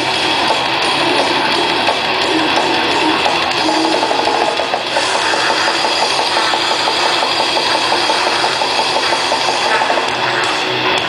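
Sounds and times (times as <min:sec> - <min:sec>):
distorted electric guitars: 0:00.0 - 0:11.0
fast drumming: 0:00.0 - 0:11.0.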